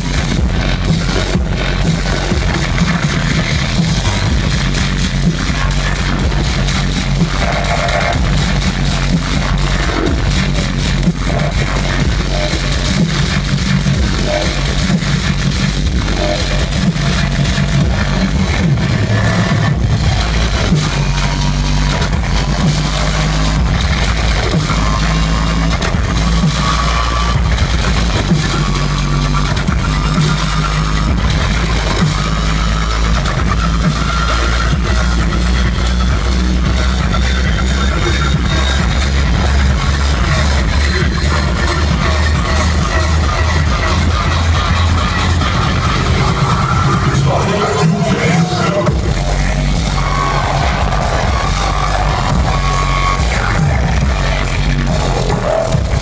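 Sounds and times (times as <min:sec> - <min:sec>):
bass-heavy dubstep over sound system: 0:00.0 - 0:56.0.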